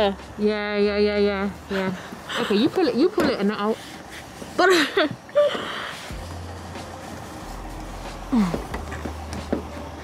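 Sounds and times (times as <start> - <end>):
low steady hum: 0.0 - 10.0
woman grunting and gasping: 8.3 - 8.7.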